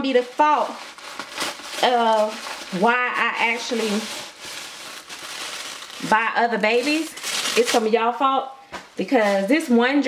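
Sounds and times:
packaging crinkling: 0:00.0 - 0:08.1.

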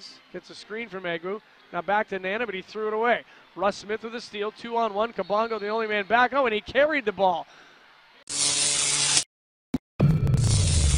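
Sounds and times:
buzzing static electronic noise: 0:10.3 - 0:10.9.

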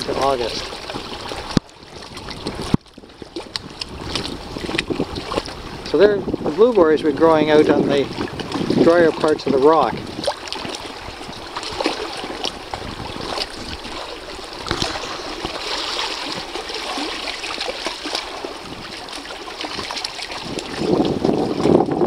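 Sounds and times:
small splashes: 0:00.0 - 0:22.0
water lapping against rocks: 0:00.0 - 0:22.0.

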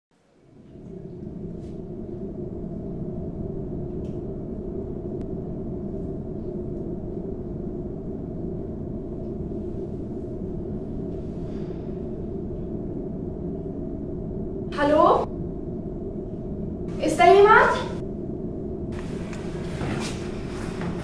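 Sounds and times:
low soundtrack drone: 0:00.2 - 0:21.0.

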